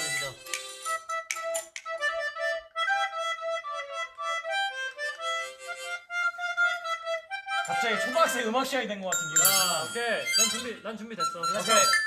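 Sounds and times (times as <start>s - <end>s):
harmonica playing: 0.0s - 12.0s.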